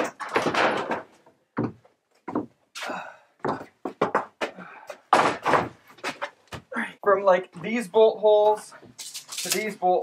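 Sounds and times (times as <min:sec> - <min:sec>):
wooden boards knocking and scraping: 0:00.0 - 0:02.6, 0:03.5 - 0:06.7.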